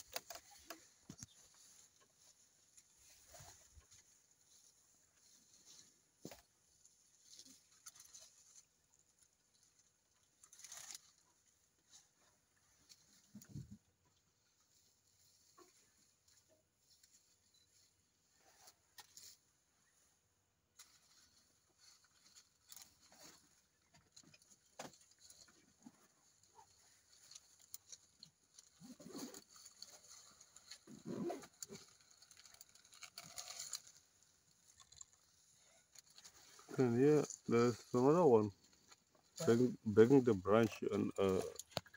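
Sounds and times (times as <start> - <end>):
twigs and leaves crackling: 0.0 - 13.6, 20.8 - 41.9.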